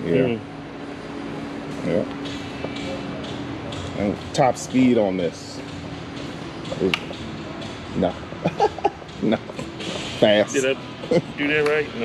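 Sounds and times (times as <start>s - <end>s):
soft voices: 0.0s - 0.4s.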